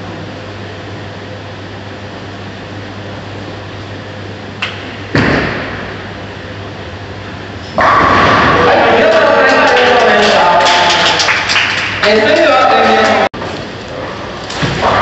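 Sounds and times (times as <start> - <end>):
bowling alley hum: 0.0 - 15.0
loud sustained noise: 2.6 - 13.5.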